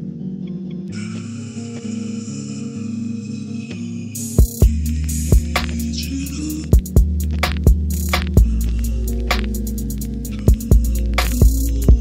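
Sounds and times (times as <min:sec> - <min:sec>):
kick drum: 0:04.4 - 0:05.5, 0:06.7 - 0:08.6
deep bass: 0:04.6 - 0:12.0.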